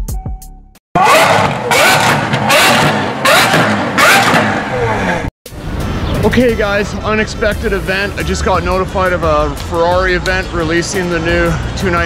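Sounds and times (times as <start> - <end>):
car engine revving hard: 1.0 - 5.3.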